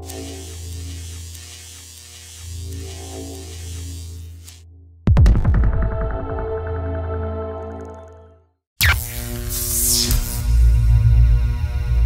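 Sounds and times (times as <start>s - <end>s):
pulsing synth drone: 8.8s - 12.0s.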